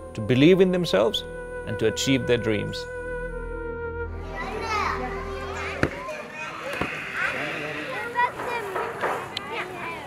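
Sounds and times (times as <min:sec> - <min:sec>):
children chattering and calling: 0:04.2 - 0:10.0.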